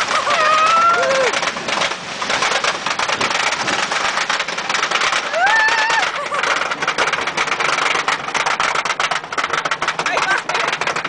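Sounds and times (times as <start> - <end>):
roller coaster rattling on track: 0.0 - 11.0
riders' voices: 10.0 - 10.9.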